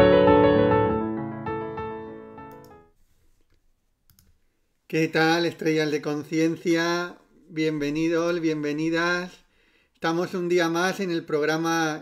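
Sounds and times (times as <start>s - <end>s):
man speaking: 4.9s - 9.4s, 10.0s - 12.0s.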